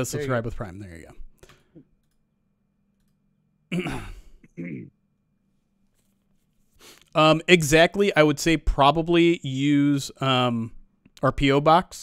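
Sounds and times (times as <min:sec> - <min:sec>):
man speaking: 0:00.0 - 0:01.3, 0:07.1 - 0:12.0.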